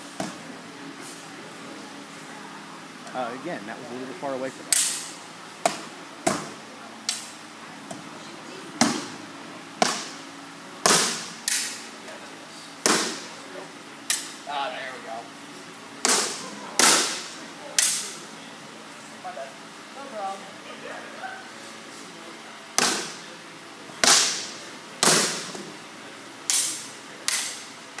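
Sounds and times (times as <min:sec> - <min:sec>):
practice weapons cracking: 0:26.5 - 0:27.7.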